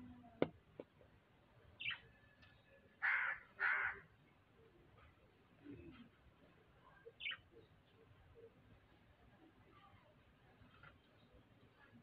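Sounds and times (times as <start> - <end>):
crow cawing: 3.0 - 4.0.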